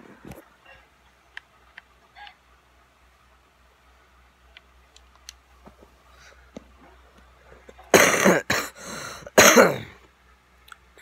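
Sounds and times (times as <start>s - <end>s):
boy coughing: 7.9s - 8.8s, 9.4s - 10.0s
breath: 8.8s - 9.4s.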